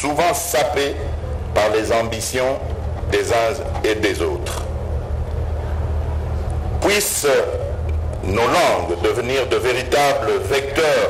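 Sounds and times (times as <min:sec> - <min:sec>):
man speaking: 0:00.0 - 0:04.6, 0:06.8 - 0:11.0
faint hum: 0:00.0 - 0:11.0
steady low rumble: 0:00.0 - 0:11.0.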